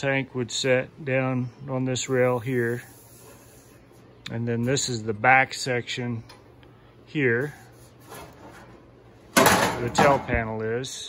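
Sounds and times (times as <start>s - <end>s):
sheet steel scraping and rattling: 7.8s - 10.4s.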